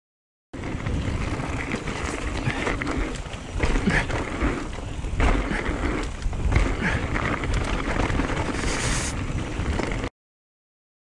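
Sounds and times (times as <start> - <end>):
bike tyres rumbling on dirt: 0.6 - 10.1
wind buffeting microphone: 0.6 - 10.1.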